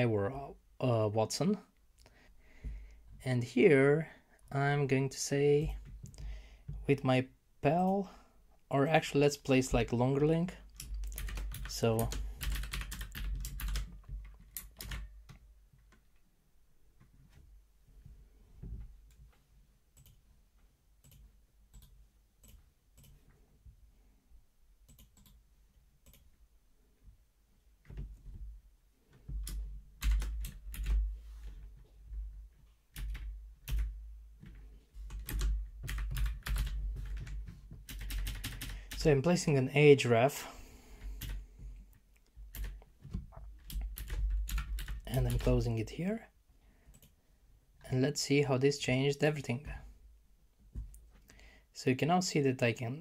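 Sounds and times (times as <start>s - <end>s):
typing on computer keyboard: 10.7s - 16.0s, 24.9s - 25.4s, 29.3s - 31.1s, 32.9s - 38.9s, 42.5s - 42.8s, 43.6s - 45.5s.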